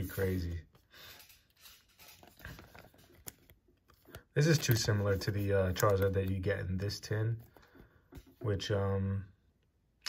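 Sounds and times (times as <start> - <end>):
trading cards rustling: 0.0 - 8.4.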